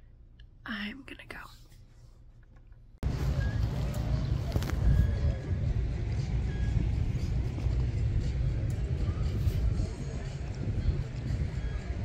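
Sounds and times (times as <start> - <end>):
wind buffeting microphone: 3.7 - 12.0.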